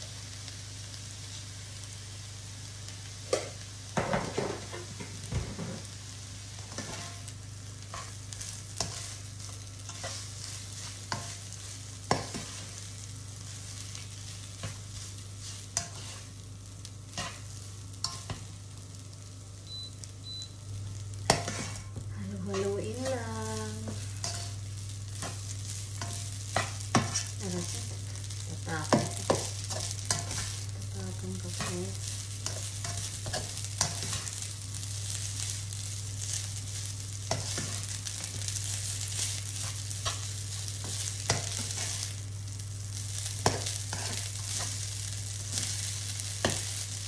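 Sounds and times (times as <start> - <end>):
low steady hum: 0.0 - 47.0
rice sizzling in a frying pan: 0.0 - 47.0
turner scraping a pan: 6.7 - 7.3, 8.0 - 9.3, 14.6 - 16.4, 17.1 - 18.5, 21.2 - 34.4, 37.3 - 42.2, 43.2 - 44.8.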